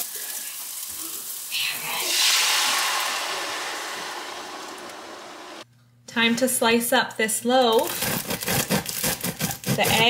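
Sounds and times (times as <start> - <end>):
bread knife sawing through crust: 8.0 - 10.0.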